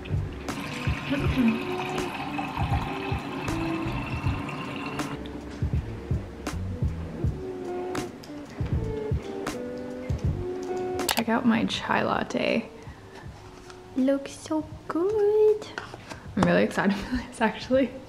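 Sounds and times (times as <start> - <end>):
background music: 0.0 - 18.0
tap water running into glass: 0.4 - 5.2.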